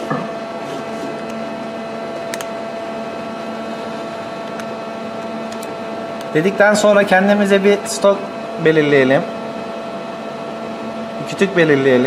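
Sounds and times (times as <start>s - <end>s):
machine hum with whine: 0.0s - 12.0s.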